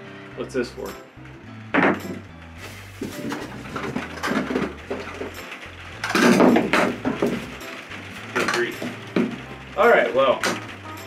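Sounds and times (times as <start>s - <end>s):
background music with bass line: 0.0s - 11.0s
plastic pipe fittings set down: 1.7s - 2.2s, 3.0s - 5.3s
plastic bag rustling: 2.1s - 11.0s.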